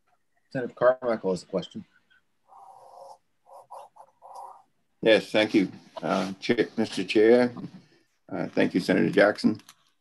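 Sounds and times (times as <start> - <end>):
garbled voice over video call: 0.6 - 9.7.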